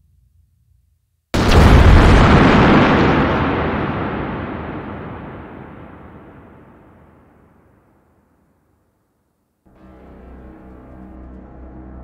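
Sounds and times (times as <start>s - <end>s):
explosion boom: 1.4s - 7.7s.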